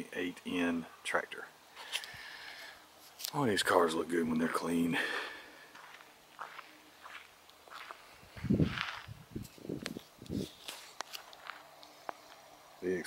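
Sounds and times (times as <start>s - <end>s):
footsteps on dry grass: 4.5s - 11.7s.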